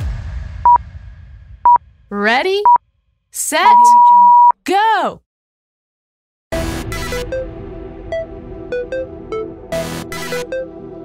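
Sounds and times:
short timer beeps: 0:03.6 - 0:04.5
long timer beep: 0:03.6 - 0:04.6.

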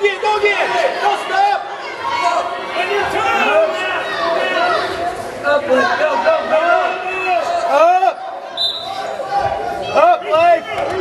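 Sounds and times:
voices echoing in gym: 0:00.0 - 0:11.0.

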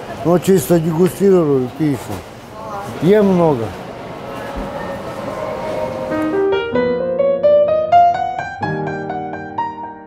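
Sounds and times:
busy restaurant background noise: 0:00.0 - 0:06.6.

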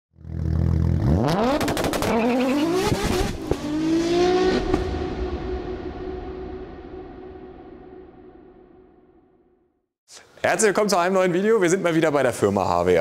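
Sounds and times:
car engine revving: 0:00.2 - 0:08.7.

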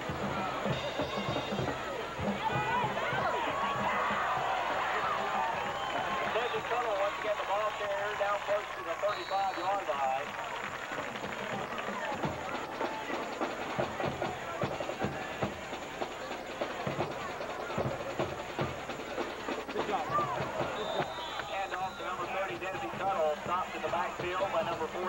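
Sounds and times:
crowd voices talking and calling out: 0:00.0 - 0:25.0
short high whistle: 0:20.7 - 0:22.2.

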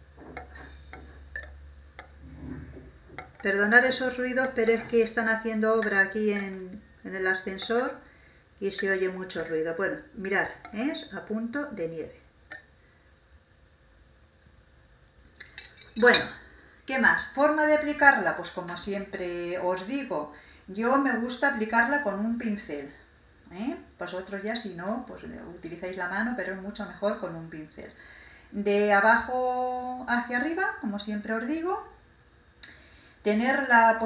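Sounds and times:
low steady hum: 0:00.0 - 0:34.0
whisk clinking on ceramic plate: 0:00.4 - 0:02.1, 0:07.4 - 0:08.0.

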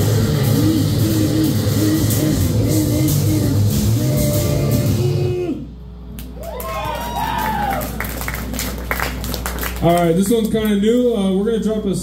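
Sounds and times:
punk band chord: 0:00.0 - 0:05.4
amplifier hum: 0:00.0 - 0:09.2
crowd whooping and cheering: 0:06.2 - 0:10.0
people clapping: 0:06.2 - 0:11.1.

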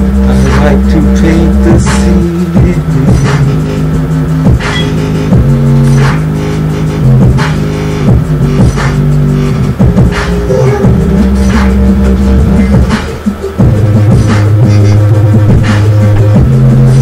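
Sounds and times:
electronic music with deep bass: 0:00.0 - 0:17.0.

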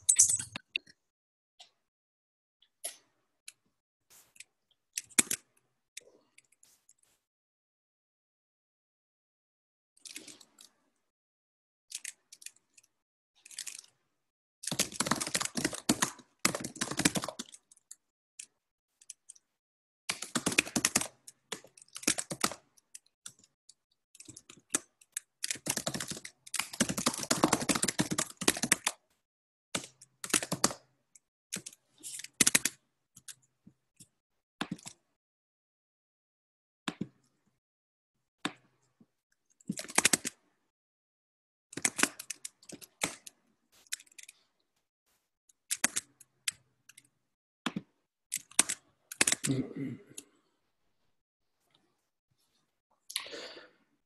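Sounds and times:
computer keyboard typing: 0:14.6 - 0:17.9, 0:20.1 - 0:22.6, 0:24.2 - 0:29.0, 0:29.8 - 0:30.8, 0:48.4 - 0:49.5.

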